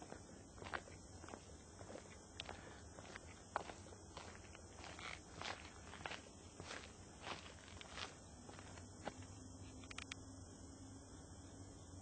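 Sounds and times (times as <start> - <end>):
quiet footsteps in a house: 0.0 - 9.4.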